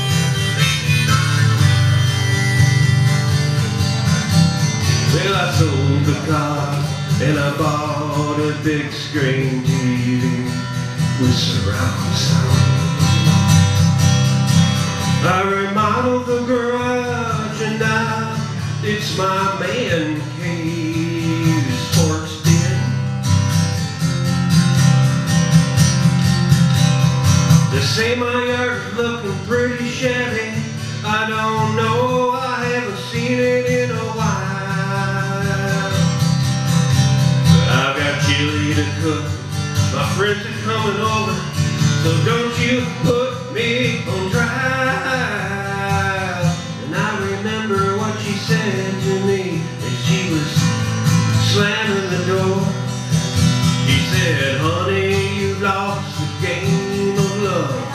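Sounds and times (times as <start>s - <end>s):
acoustic guitar strumming: 0.0s - 57.9s
country folk-rock instrumental: 0.0s - 57.9s.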